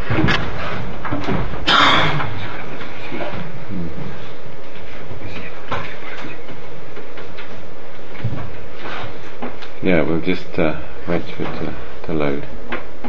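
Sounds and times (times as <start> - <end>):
room rumble and hiss: 0.0 - 13.0.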